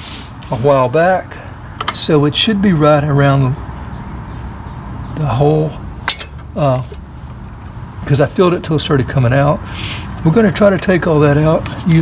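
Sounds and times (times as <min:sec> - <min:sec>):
metallic clinks: 0:06.1 - 0:06.5.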